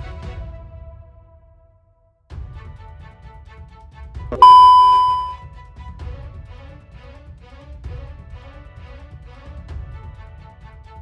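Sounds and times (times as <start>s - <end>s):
bright bell-like ding: 4.4s - 5.4s.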